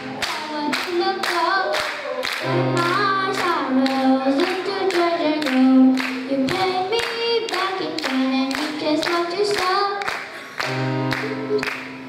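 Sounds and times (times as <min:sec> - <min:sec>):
person singing: 0:00.0 - 0:11.9
hand claps: 0:00.0 - 0:12.0.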